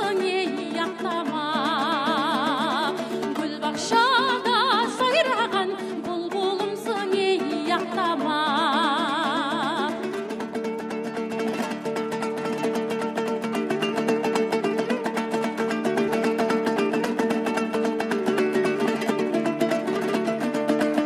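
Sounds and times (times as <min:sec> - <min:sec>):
lutes strummed rapidly: 0:00.0 - 0:21.0.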